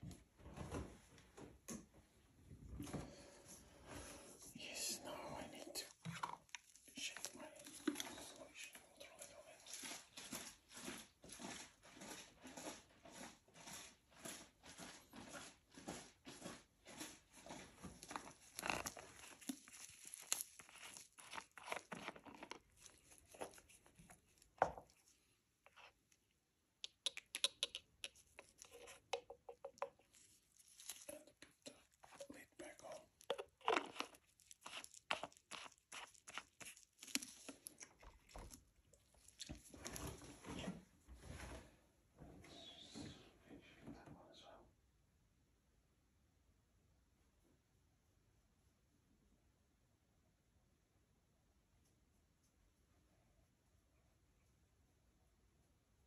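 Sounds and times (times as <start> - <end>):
plastic gloves crinkling: 16.5 - 26.1, 29.7 - 40.2.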